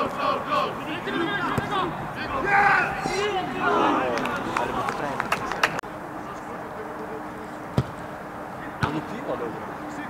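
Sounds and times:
voices shouting: 0:00.0 - 0:05.8.

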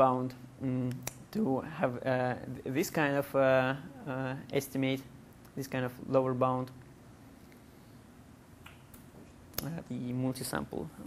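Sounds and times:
person speaking: 0:00.0 - 0:06.8, 0:09.5 - 0:11.0.

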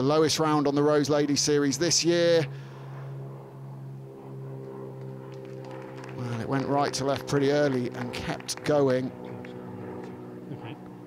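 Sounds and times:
low mechanical motor hum: 0:00.0 - 0:11.0.

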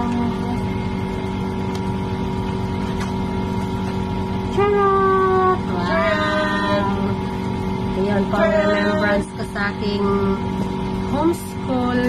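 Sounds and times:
machine hum with low drone: 0:00.0 - 0:12.0.

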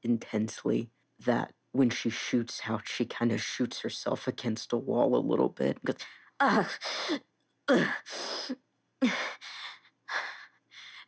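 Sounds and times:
person groaning in pain: 0:07.7 - 0:08.1.

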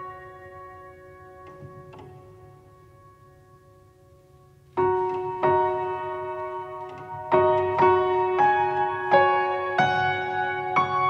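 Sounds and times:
soft slow piano music: 0:00.0 - 0:11.0.

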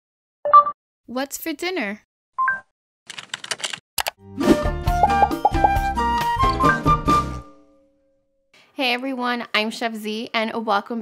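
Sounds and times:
quick run of clicks: 0:03.1 - 0:04.2.

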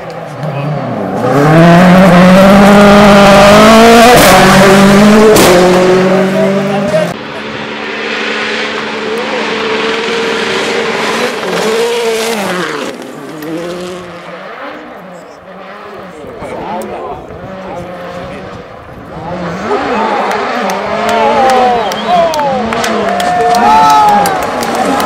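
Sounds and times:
rally car accelerating: 0:00.0 - 0:25.0.

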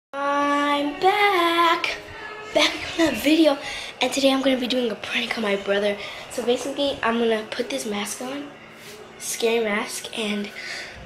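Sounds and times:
girl singing long notes: 0:00.2 - 0:03.8
short breath: 0:10.6 - 0:11.0.

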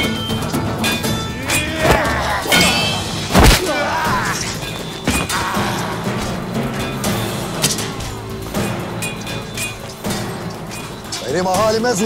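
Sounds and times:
dramatic orchestral film music: 0:00.0 - 0:12.0
sword fight hits: 0:00.8 - 0:06.4.

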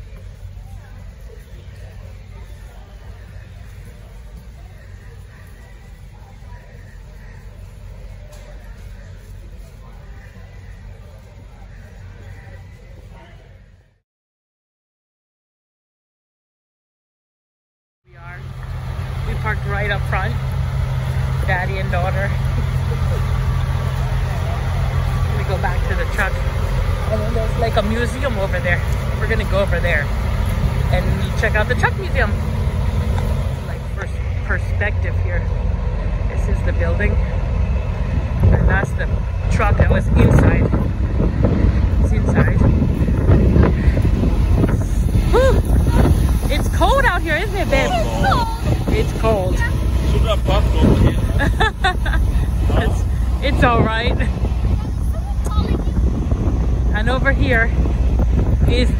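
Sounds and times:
loud low rough rumble: 0:00.0 - 0:14.0, 0:18.1 - 0:58.9
wind buffeting microphone: 0:18.8 - 0:58.9.

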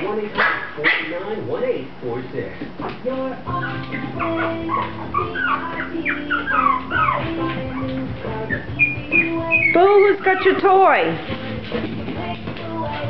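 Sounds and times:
background music with held notes: 0:03.2 - 0:13.0
puppies whimpering and yipping: 0:03.5 - 0:11.8.

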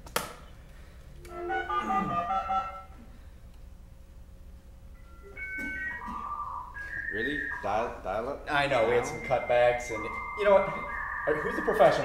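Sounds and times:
dialing beeps: 0:05.0 - 0:08.0, 0:08.7 - 0:12.0
stepped electronic tones: 0:05.0 - 0:12.0.

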